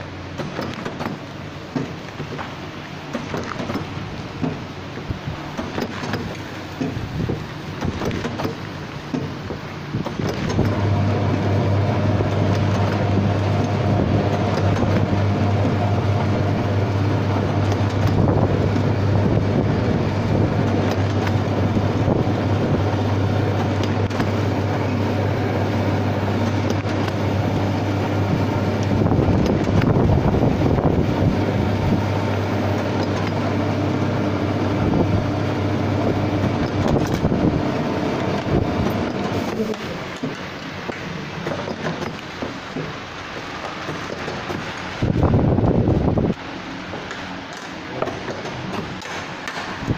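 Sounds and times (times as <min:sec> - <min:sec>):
low machine hum: 0:00.0 - 0:49.9
machine mechanical clatter: 0:00.0 - 0:49.9.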